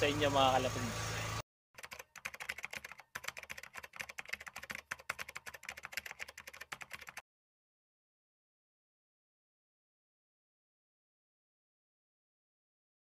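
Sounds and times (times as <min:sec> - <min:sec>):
keyboard typing clicks: 0:01.8 - 0:07.2.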